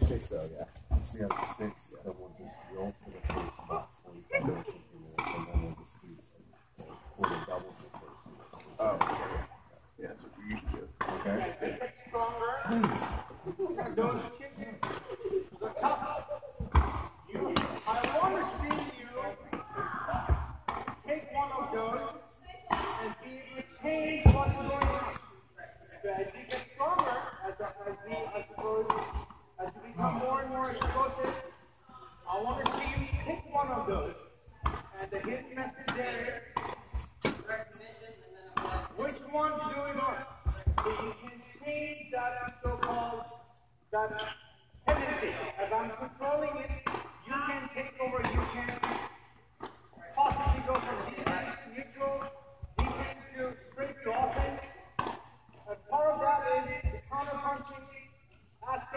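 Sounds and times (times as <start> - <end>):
tennis ball hit with racquets: 5.2 - 5.7, 16.6 - 21.0, 28.6 - 29.3, 32.4 - 37.5, 38.6 - 41.2, 42.4 - 43.1, 46.6 - 53.6, 54.2 - 55.3
people talking: 50.0 - 54.8.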